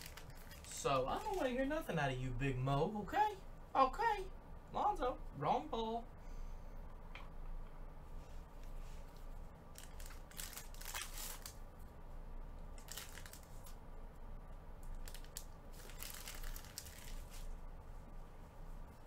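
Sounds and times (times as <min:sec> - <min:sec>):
plastic wrapper tearing and crinkling: 0:00.0 - 0:01.6, 0:09.7 - 0:11.6, 0:12.8 - 0:13.8, 0:14.9 - 0:17.5.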